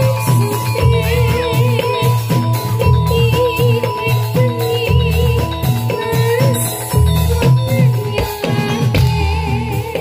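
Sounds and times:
drum strokes: 0.0 - 10.0
gamelan music: 0.0 - 10.0.

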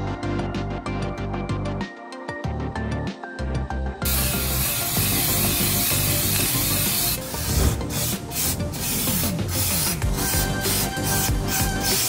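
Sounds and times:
background music: 0.0 - 12.0
aerosol spray hissing: 4.0 - 12.0.

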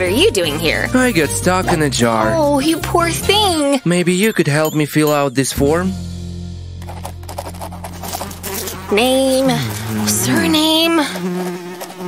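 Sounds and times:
pen scratching on paper: 6.9 - 12.0.

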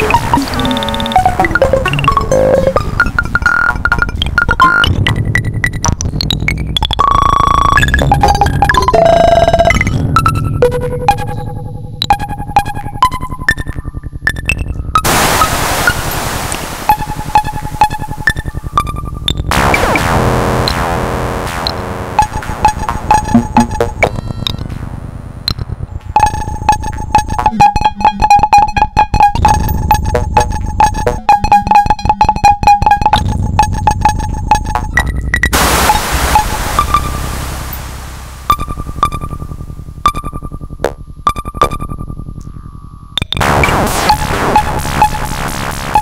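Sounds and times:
clicking pulse over low buzz: 0.0 - 46.0
noisy burst with falling sweeps: 15.0 - 18.6, 19.5 - 24.0, 35.5 - 39.1
noisy synth wash: 15.0 - 27.1, 35.5 - 40.0, 43.4 - 46.0.

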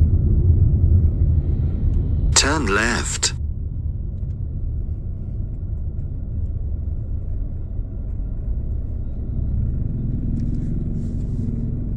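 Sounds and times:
car engine and road rumble: 4.1 - 11.9.

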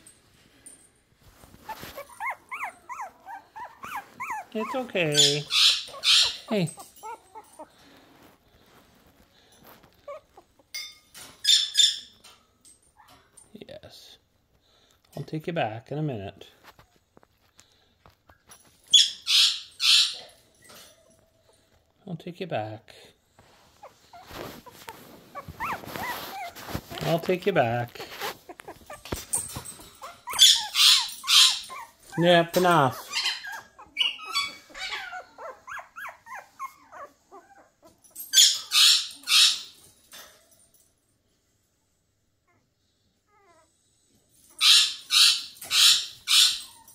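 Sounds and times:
puppy whimpering: 1.6 - 8.0, 9.9 - 10.8, 23.7 - 39.6, 42.5 - 43.8, 45.7 - 46.9.

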